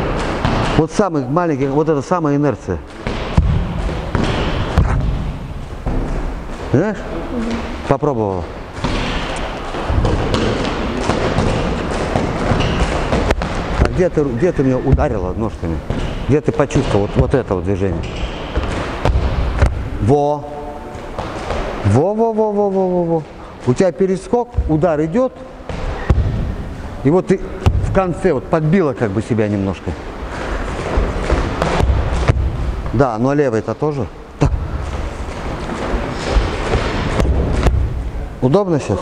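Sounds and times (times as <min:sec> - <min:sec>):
sneakers thudding on wooden floor: 0:30.5 - 0:33.0.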